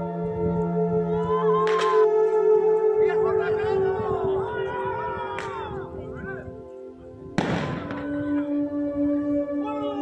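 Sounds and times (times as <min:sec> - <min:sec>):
blank gunshot crack: 0:07.4 - 0:08.0.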